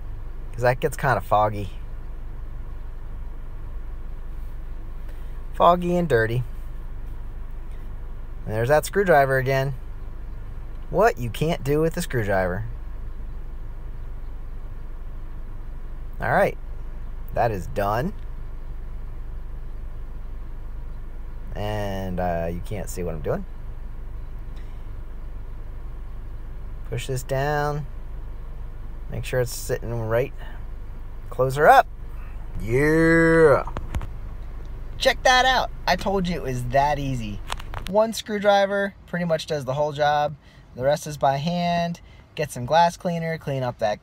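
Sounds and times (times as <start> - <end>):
low background rumble: 0.0 - 44.0
low machine hum: 0.0 - 44.0.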